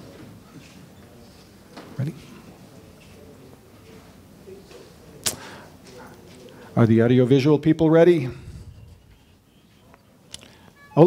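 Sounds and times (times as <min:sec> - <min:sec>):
sharp click: 0:05.2 - 0:05.5.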